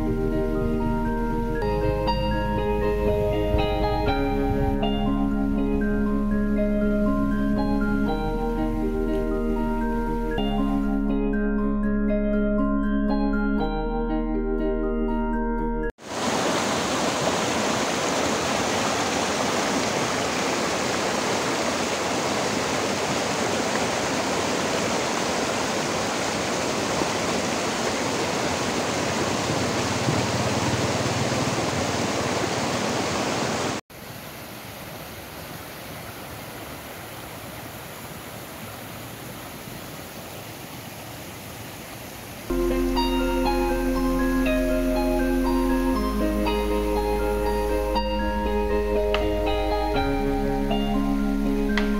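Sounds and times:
stream rushing over stones: 16.0s - 42.5s.

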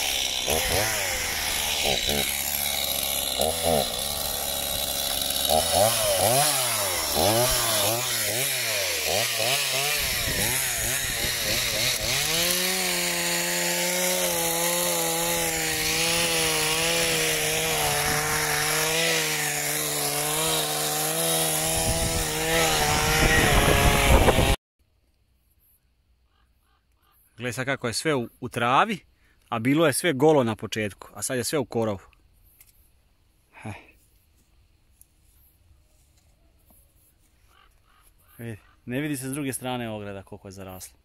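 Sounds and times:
chainsaw revving: 0.0s - 24.6s.

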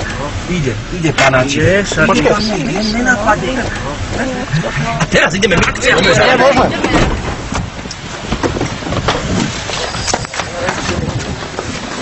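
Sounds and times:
indistinct voices: 0.0s - 7.3s.

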